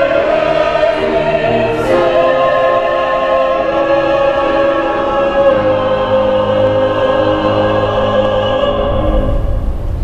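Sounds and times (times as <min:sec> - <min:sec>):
mixed choir singing held chords: 0:00.0 - 0:10.0.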